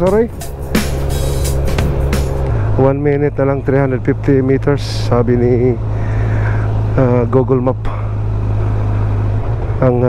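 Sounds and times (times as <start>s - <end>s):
man speaking: 0.0s - 0.4s, 2.7s - 5.8s, 7.0s - 8.1s
motorcycle engine running: 0.0s - 10.0s
wind and road noise: 0.0s - 10.0s.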